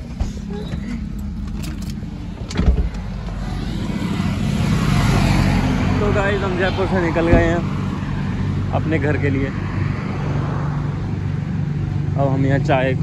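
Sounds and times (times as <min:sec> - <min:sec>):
car engine rumble: 0:00.0 - 0:13.0.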